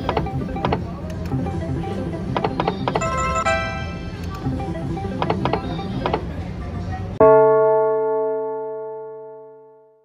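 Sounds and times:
slot machine reels spinning: 0.0 - 6.2.

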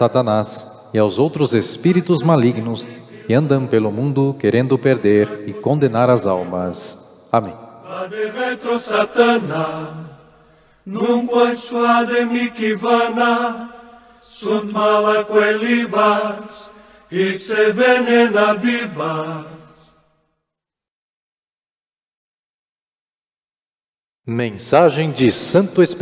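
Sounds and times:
person chanting a sung prayer: 1.2 - 10.2, 10.9 - 13.7, 14.4 - 19.7.

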